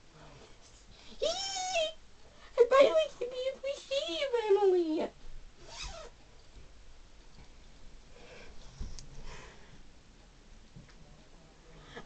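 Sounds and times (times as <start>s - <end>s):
faint rustling of costume: 0.0s - 12.0s.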